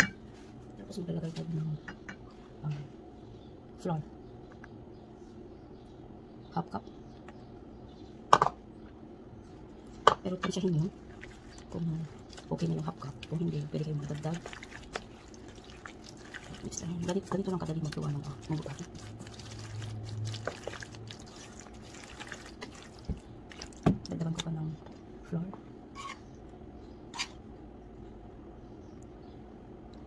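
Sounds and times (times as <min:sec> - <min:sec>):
spoon stirring wet batter: 0:10.3 - 0:24.5.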